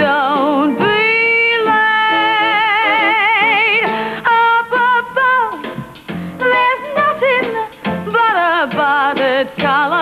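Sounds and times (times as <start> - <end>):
instrumental accompaniment: 0.0 - 10.0
woman singing with vibrato: 0.0 - 10.0.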